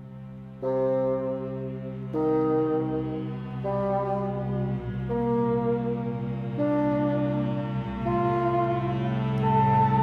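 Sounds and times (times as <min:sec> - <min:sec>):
bassoon and chamber orchestra: 0:00.0 - 0:10.0
steady low drone: 0:00.0 - 0:10.0.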